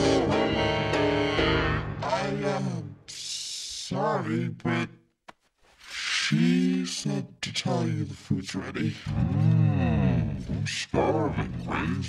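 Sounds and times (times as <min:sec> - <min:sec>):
piano-led music: 0:00.0 - 0:02.4
person singing: 0:00.0 - 0:03.4.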